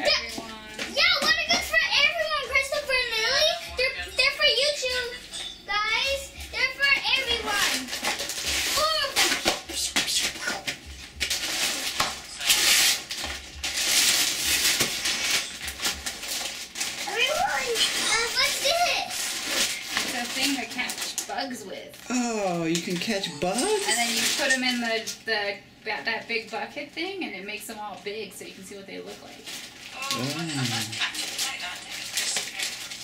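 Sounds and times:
wrapping paper tearing and crinkling: 0.1s - 3.6s, 6.5s - 25.2s, 28.5s - 33.0s.

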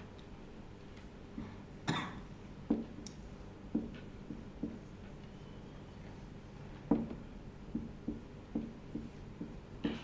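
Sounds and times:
person coughing: 1.8s - 2.3s
marker writing on whiteboard: 3.7s - 5.2s, 6.7s - 10.0s.

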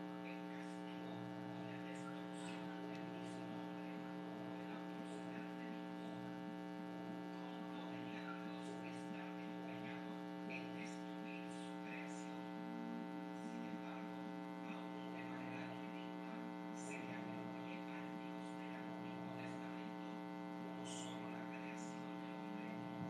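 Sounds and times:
faint electrical hum: 0.0s - 23.0s.

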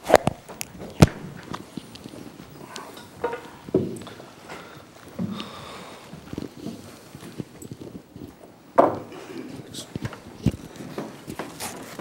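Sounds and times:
footsteps and shuffling: 0.0s - 12.0s.

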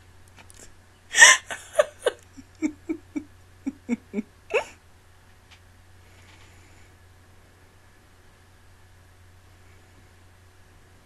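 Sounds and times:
woman laughing in short bursts: 1.1s - 4.7s.

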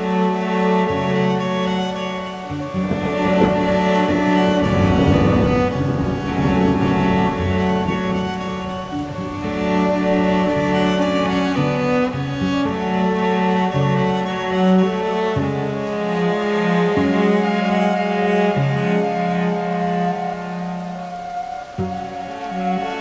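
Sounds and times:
slow bowed strings: 0.0s - 23.0s.

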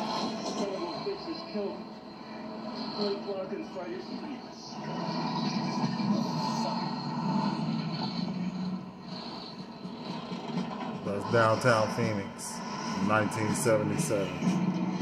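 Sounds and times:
film soundtrack through tv speaker: 0.0s - 15.0s.

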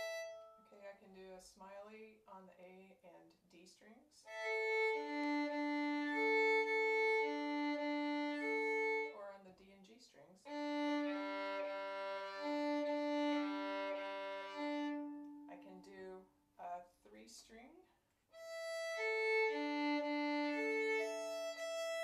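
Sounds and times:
violin string crossings: 0.0s - 0.9s, 4.3s - 9.4s, 10.5s - 16.0s, 18.4s - 22.0s.

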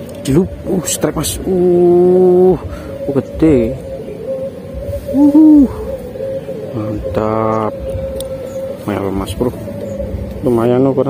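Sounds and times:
faint steady hum: 0.0s - 11.0s
man hooting: 5.1s - 6.0s.

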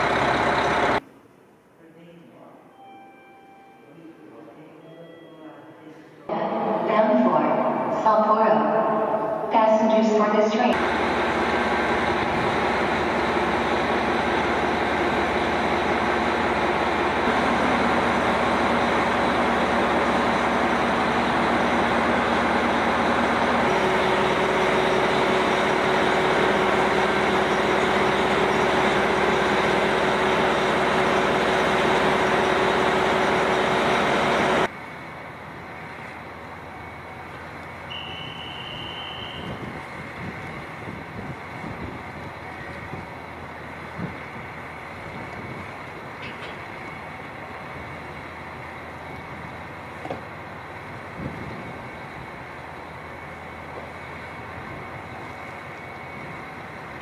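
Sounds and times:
diesel railcar engines idling: 0.0s - 1.1s, 6.0s - 57.0s
brief high tone: 2.7s - 10.7s, 37.9s - 39.7s.

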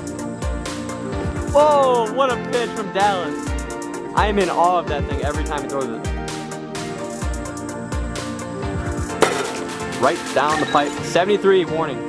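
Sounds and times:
sharp knock: 9.2s - 9.9s.

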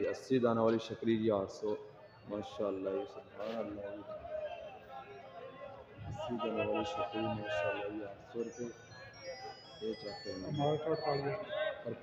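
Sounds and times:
men calling out: 5.5s - 8.6s
tinkling high tones: 8.3s - 11.6s.

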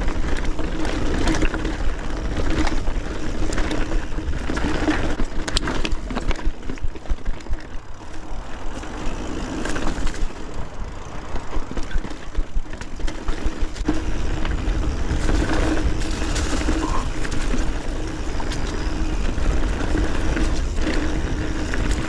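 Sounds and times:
bike clicks and rattles: 0.0s - 22.0s
wind buffeting microphone: 0.0s - 22.0s.

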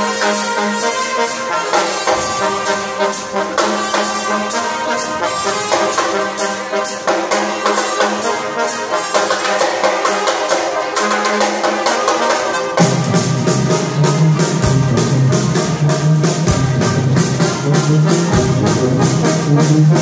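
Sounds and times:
drum kit beat: 0.0s - 20.0s
trombones and trumpets playing: 0.0s - 20.0s.

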